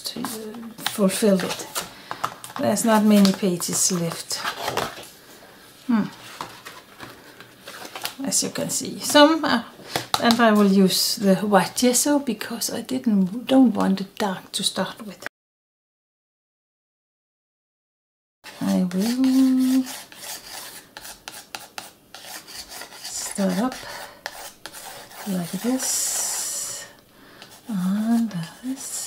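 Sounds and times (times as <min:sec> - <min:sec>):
paper pages rustling: 0:00.2 - 0:05.1, 0:06.2 - 0:08.2
pencil scratching on paper: 0:18.5 - 0:26.7.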